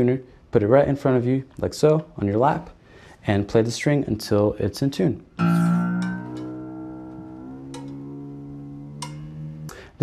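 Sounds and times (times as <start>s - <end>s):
acoustic guitar strings ringing: 5.4s - 9.8s.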